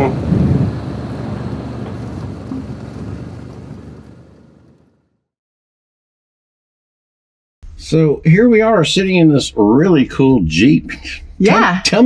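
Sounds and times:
wind noise on microphone: 0:00.0 - 0:04.7
motorcycle engine drone: 0:00.0 - 0:05.3.

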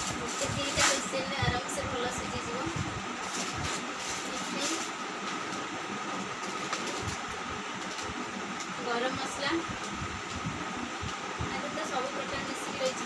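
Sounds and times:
plastic bag rustling: 0:00.0 - 0:01.6, 0:02.6 - 0:08.2
steady background hum: 0:00.0 - 0:13.0.

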